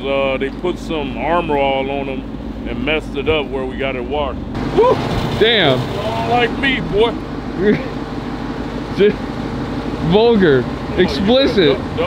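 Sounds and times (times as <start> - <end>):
motor humming: 4.4 - 12.0
person laughing: 4.7 - 5.2, 7.5 - 8.0.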